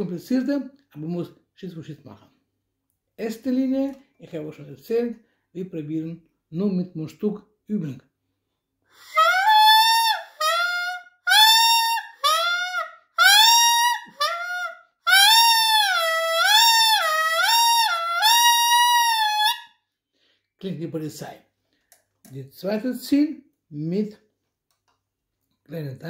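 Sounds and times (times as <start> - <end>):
saxophone mouthpiece notes: 9.0 - 19.6.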